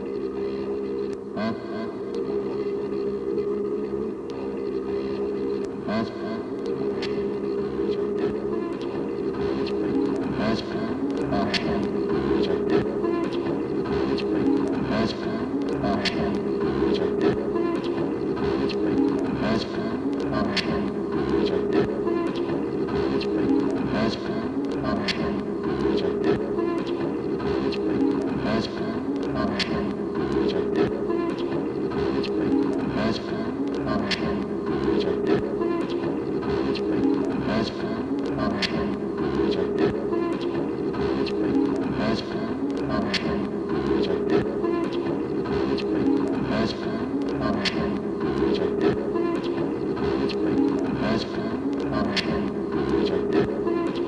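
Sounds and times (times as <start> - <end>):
experimental tape loop music: 0.0 - 54.0.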